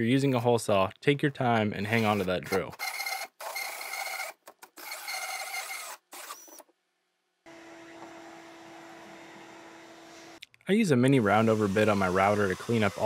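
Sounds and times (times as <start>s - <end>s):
hole saw cutting plywood: 1.9s - 6.6s, 11.2s - 13.0s
drill motor whining: 2.0s - 6.6s, 11.2s - 13.0s
shop vacuum humming: 7.5s - 10.4s, 11.2s - 13.0s.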